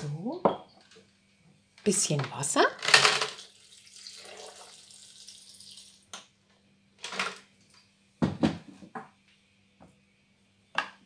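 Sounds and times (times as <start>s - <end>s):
water pouring into blender jar: 3.4s - 6.0s.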